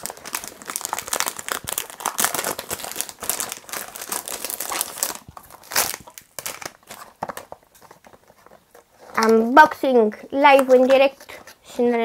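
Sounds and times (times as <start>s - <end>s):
cellophane crinkling: 0.0s - 9.6s.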